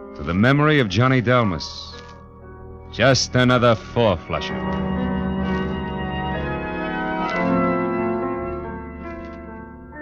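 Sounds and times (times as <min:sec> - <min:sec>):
organ holding chords: 0:00.0 - 0:10.0.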